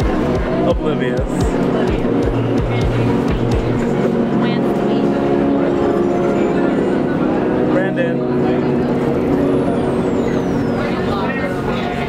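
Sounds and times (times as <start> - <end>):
high whine falling in pitch: 0.0 - 12.0.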